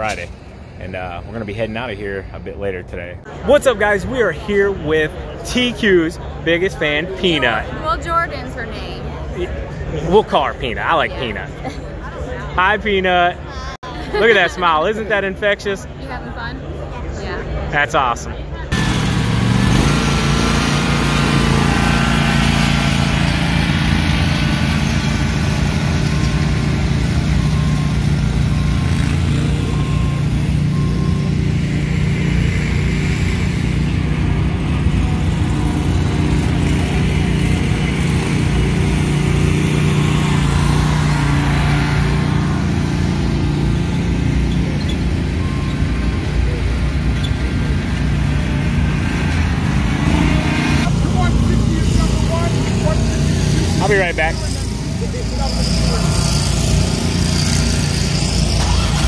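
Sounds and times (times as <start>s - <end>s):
riding mower engines running: 0.0s - 16.9s, 18.6s - 59.0s.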